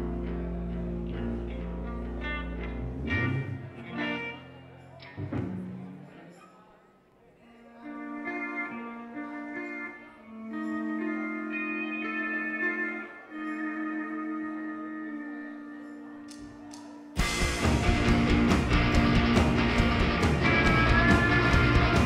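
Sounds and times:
live rock band playing: 0.0 - 4.5, 17.2 - 22.0
drums: 5.2 - 5.9, 16.7 - 22.0.

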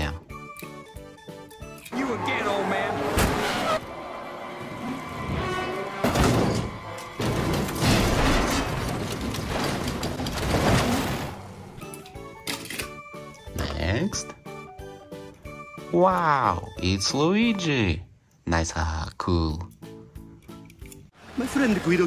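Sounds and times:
music: 0.0 - 3.4, 11.8 - 21.9
car crash impacts and smashing metal: 5.3 - 11.8.

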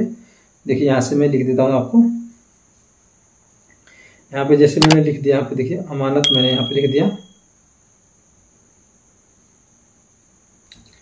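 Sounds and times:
faint high-pitched whine: 0.0 - 11.0
short ringing chime: 6.2 - 7.3.

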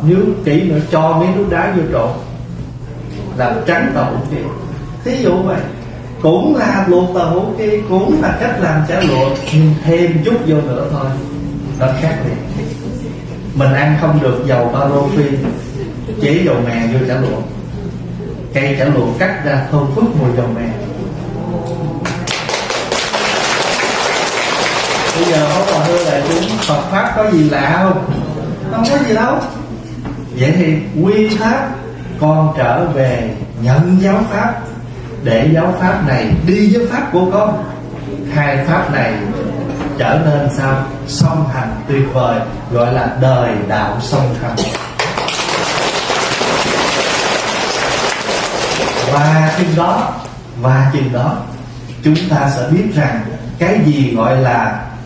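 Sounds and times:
audience applauding: 22.0 - 26.8, 44.7 - 49.8
person talking: 24.8 - 29.6.

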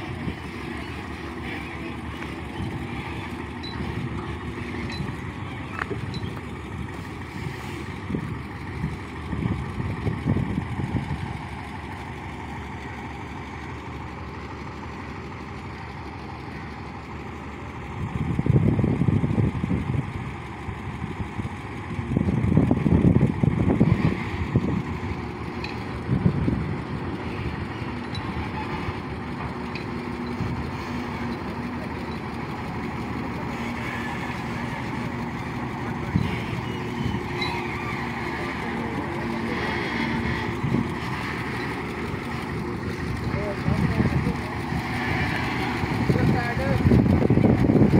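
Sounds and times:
truck diesel engine reversing: 0.0 - 47.9.

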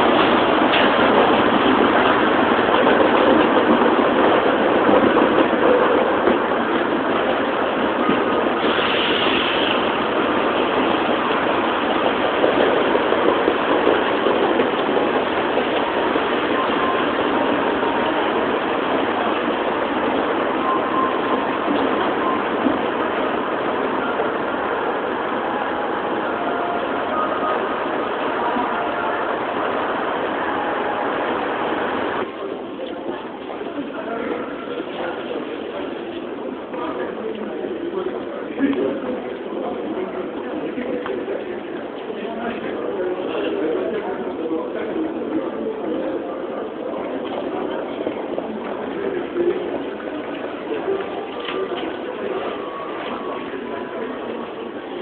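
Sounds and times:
road traffic noise: 6.5 - 32.5
bus passing close: 16.0 - 32.5.

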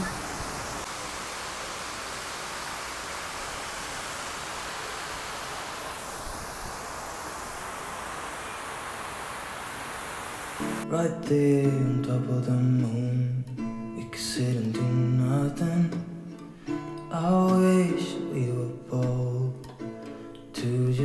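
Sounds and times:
fountain water splashing: 0.0 - 10.8
guitar music with singing: 10.6 - 21.0.

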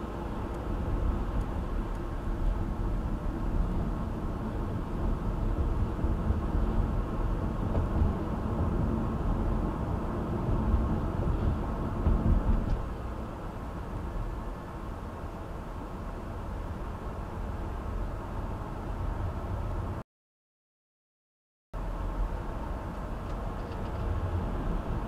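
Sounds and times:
car engine: 0.0 - 20.0
road and tyre rumble: 0.0 - 20.0, 21.8 - 25.0.

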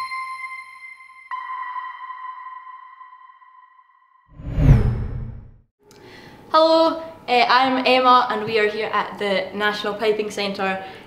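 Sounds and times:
whoosh: 4.4 - 5.6.

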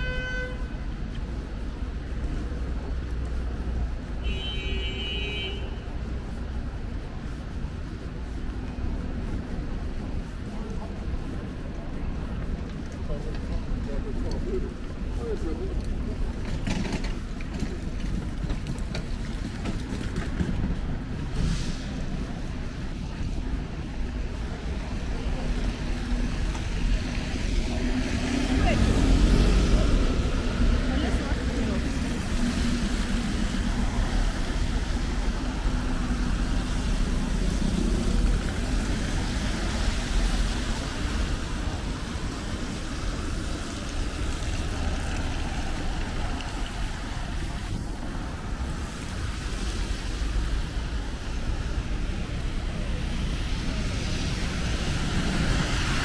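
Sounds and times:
tyres hissing on wet road: 0.0 - 56.0
bus engine humming: 5.6 - 56.0.

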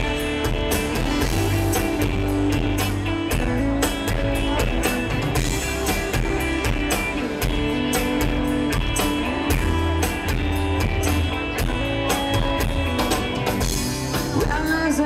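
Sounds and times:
bass guitar: 0.0 - 15.0
drum-kit beat: 0.0 - 15.0
electric guitar: 0.0 - 15.0
person's voice: 14.3 - 15.0.

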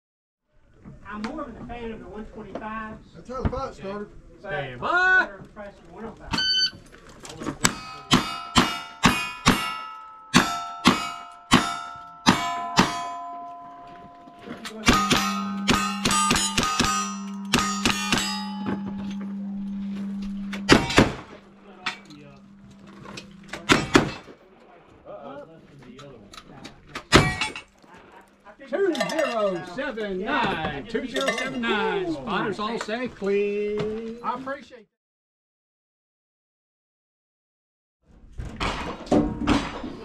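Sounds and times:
steel target ringing: 7.6 - 24.3
gunshots: 14.8 - 18.4, 20.6 - 21.4, 23.5 - 24.4
shotgun shots: 14.8 - 18.4, 20.6 - 21.4, 23.6 - 24.4
rifle shots: 14.9 - 18.4, 23.6 - 24.3.

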